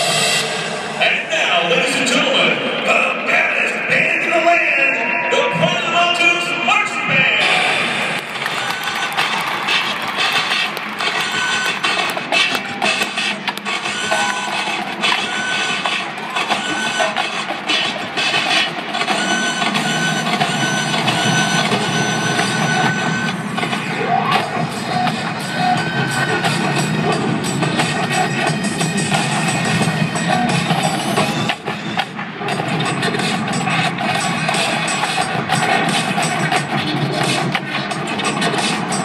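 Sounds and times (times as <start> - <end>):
marching band playing: 7.8 - 23.8.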